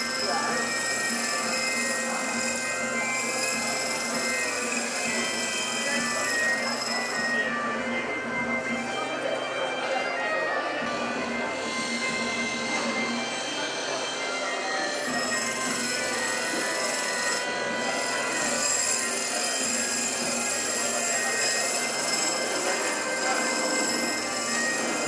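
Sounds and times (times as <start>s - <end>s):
sanding wood on lathe: 0.0s - 7.4s, 15.0s - 25.0s
lathe high whine: 0.0s - 25.0s.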